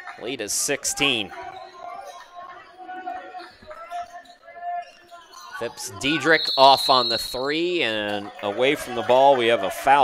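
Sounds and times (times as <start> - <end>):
faint voices of players: 0.0 - 10.0.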